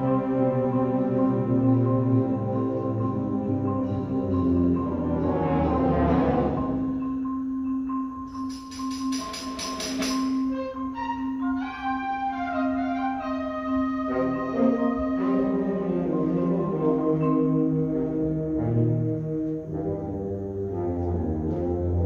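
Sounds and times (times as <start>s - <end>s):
concert band sustained low note: 0.0s - 7.4s
mallet percussion notes: 8.3s - 10.7s.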